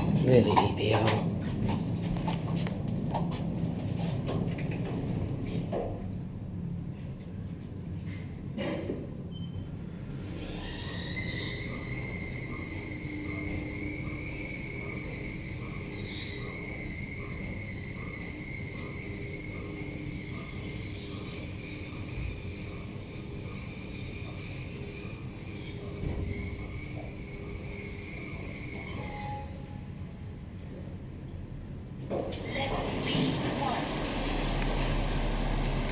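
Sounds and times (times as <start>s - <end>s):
elevator drive whine: 9.1s - 35.9s.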